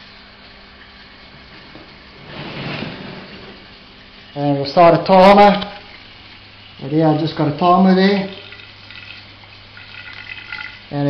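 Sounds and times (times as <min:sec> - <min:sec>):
liquid trickling into glass cylinder: 0:03.4 - 0:11.0.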